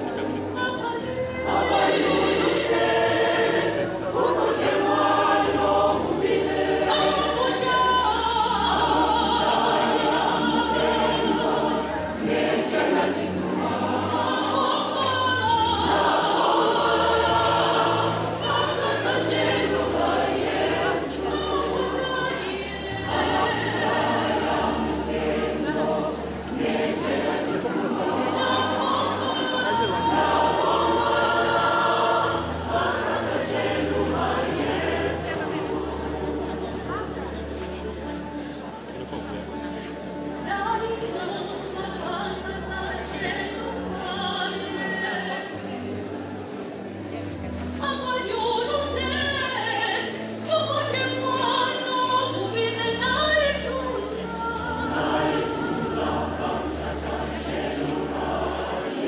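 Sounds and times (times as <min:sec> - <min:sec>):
choir singing gospel: 0:00.0 - 0:59.0.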